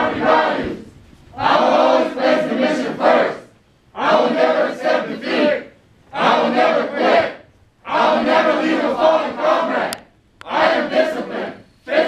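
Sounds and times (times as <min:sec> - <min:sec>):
people chanting in unison: 0:00.0 - 0:12.0.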